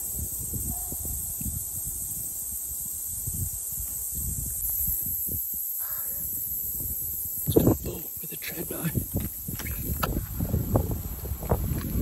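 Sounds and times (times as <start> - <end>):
crow cawing: 5.8 - 6.3.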